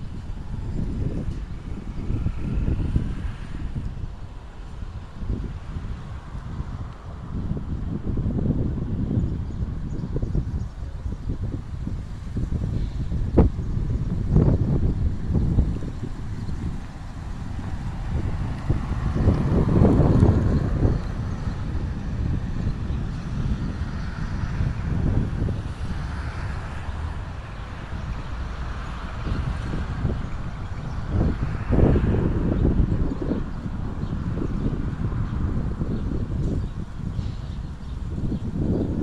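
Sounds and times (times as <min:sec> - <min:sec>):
wind buffeting microphone: 0:00.0 - 0:39.0.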